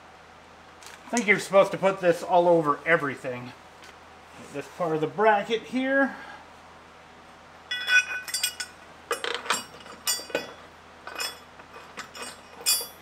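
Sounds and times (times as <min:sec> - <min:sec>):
metal bolt and washers clinking: 0:07.7 - 0:13.0.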